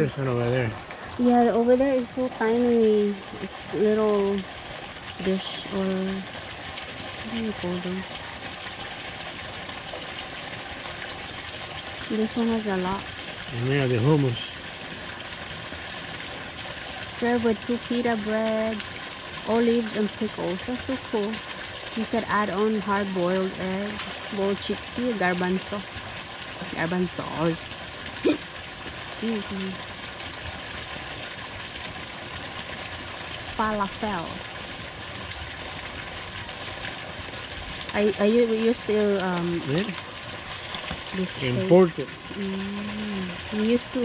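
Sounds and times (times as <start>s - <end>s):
outdoor ambience hiss: 0.0s - 44.0s.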